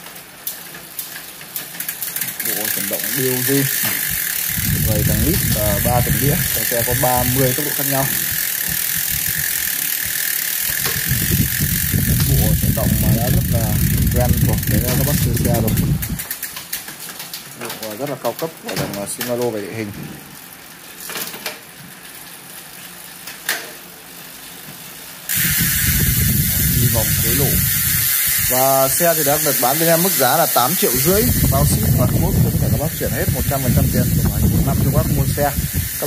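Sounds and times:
bicycle freehub ticking: 0:00.0 - 0:19.5, 0:20.4 - 0:36.0
derailleur clicks: 0:00.1 - 0:17.4, 0:25.3 - 0:36.0
chain running over cassette: 0:00.1 - 0:18.0, 0:25.3 - 0:36.0
loud steady hiss: 0:02.4 - 0:16.0, 0:25.0 - 0:36.0.

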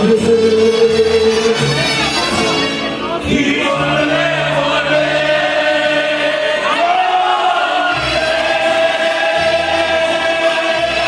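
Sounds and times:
person singing into microphone: 0:00.0 - 0:02.0, 0:03.2 - 0:11.0
amplified latin backing music: 0:00.0 - 0:11.0.

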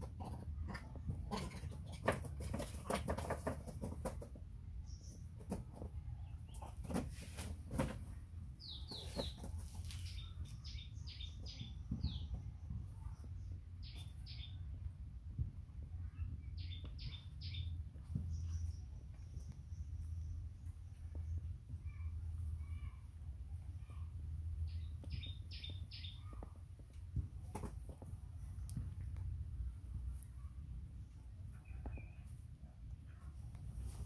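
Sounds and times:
rustling: 0:06.5 - 0:10.5.

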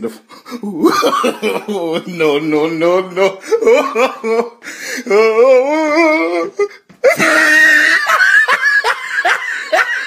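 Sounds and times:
person snickering laughter: 0:07.0 - 0:10.0.

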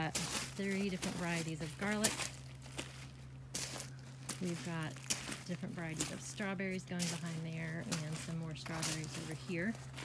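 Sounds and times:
footsteps crunching on mulch: 0:00.0 - 0:10.0.

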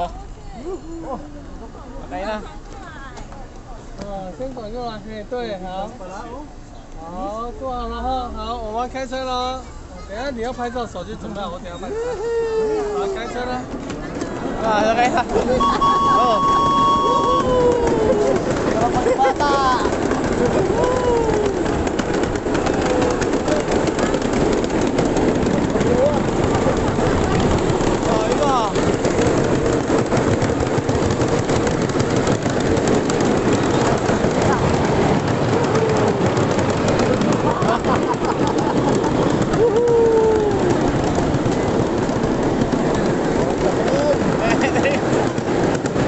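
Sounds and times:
mini train wheels rattling on rail: 0:01.9 - 0:46.0
voices: 0:05.9 - 0:24.4
high wheel squeal: 0:15.5 - 0:17.9.

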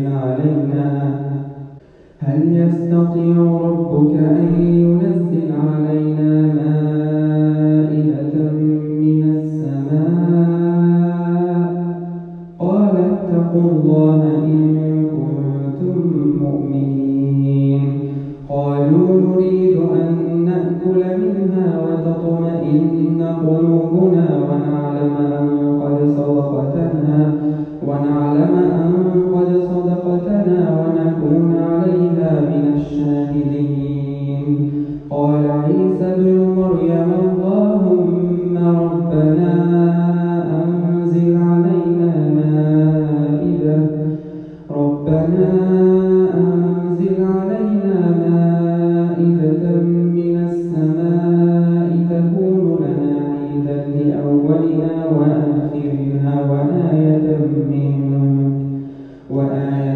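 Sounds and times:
man chanting melodically: 0:00.0 - 0:59.9.

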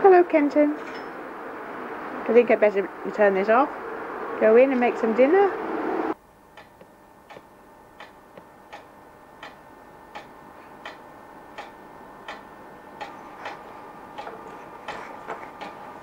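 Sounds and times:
clock ticking: 0:06.6 - 0:15.8.

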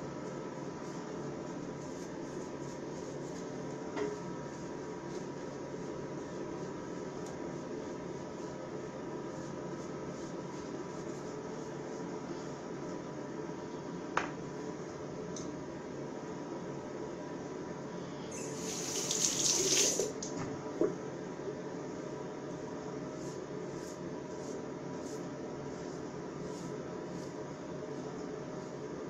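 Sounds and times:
room hum and hiss: 0:00.0 - 0:29.0.

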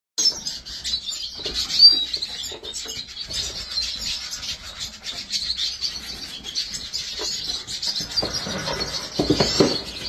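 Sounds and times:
cage birds chirping: 0:00.2 - 0:10.0.

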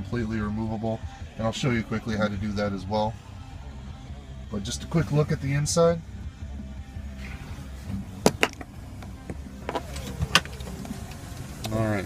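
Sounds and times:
seat hardware clicks and knocks: 0:08.2 - 0:11.2.

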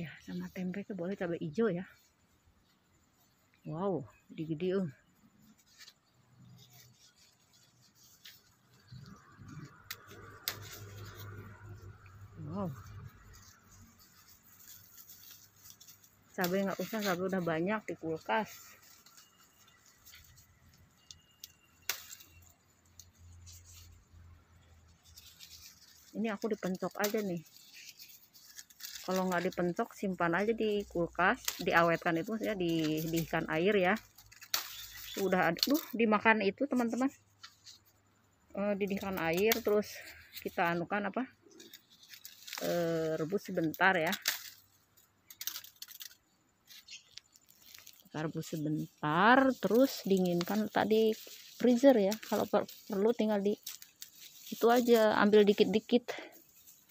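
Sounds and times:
bean pods snapping off vine: 0:09.7 - 0:11.6, 0:15.7 - 0:19.3, 0:21.4 - 0:22.5, 0:26.1 - 0:27.5, 0:31.2 - 0:36.2, 0:39.0 - 0:40.8, 0:41.6 - 0:48.6, 0:49.2 - 0:55.6.

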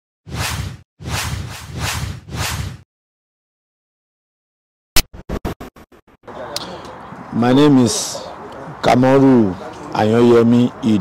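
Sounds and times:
whoosh: 0:00.3 - 0:02.8.

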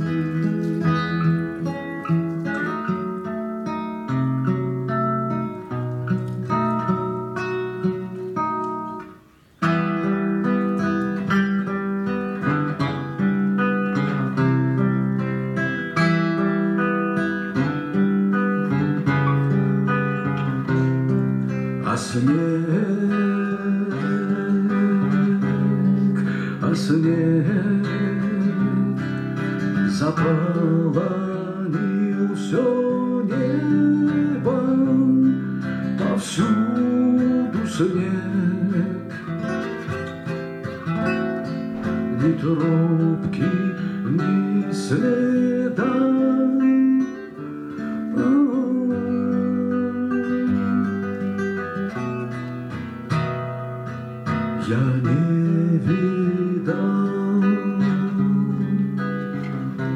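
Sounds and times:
fingerstyle classical guitar: 0:00.0 - 0:59.9.

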